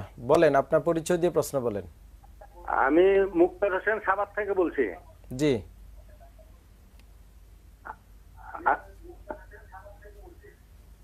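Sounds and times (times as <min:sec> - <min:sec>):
distorted voice over telephone: 0:07.9 - 0:10.6.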